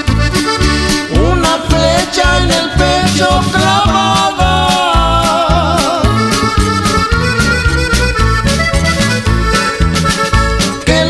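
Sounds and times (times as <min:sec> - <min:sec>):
accordion holding notes: 0:00.0 - 0:11.0
bass line: 0:00.0 - 0:11.0
percussion steady beat: 0:00.0 - 0:11.0.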